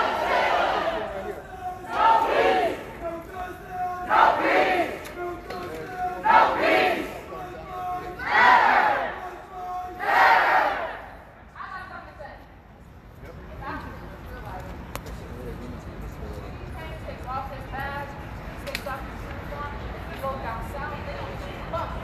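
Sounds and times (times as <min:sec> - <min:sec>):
crowd shouting a chant: 0:00.0 - 0:05.2, 0:06.0 - 0:11.3.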